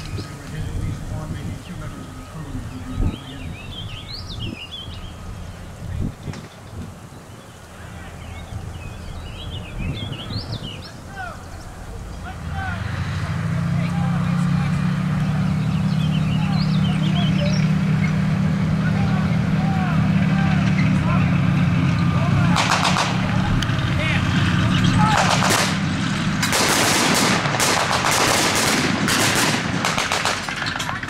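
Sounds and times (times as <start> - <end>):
birds singing: 0.0 - 25.8
tank engine rumbling: 0.0 - 31.0.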